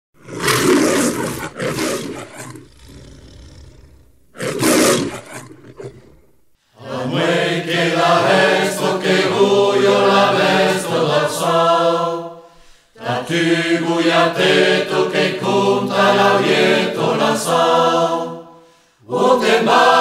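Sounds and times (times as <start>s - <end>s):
choir of low voices singing: 6.7s - 20.0s.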